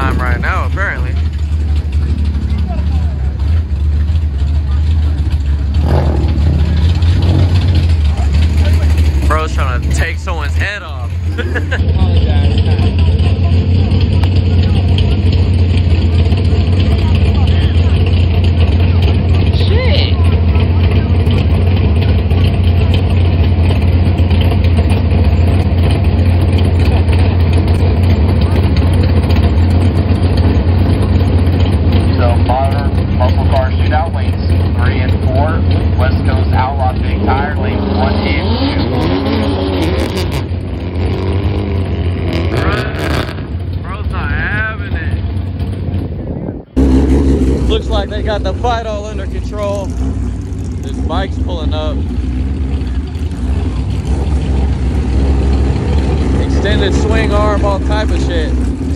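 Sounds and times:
indistinct voices: 0:00.0 - 0:23.4
car engines idling: 0:00.0 - 0:58.9.

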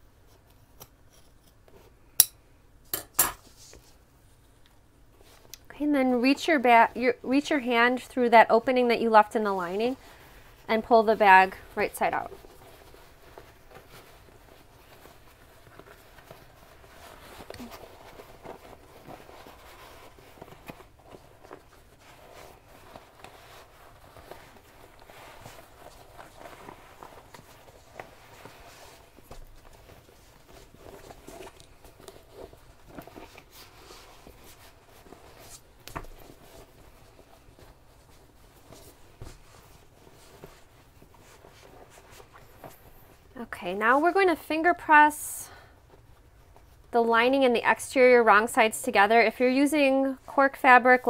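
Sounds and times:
fabric rustling and crumpling: 0:06.1 - 0:45.2.

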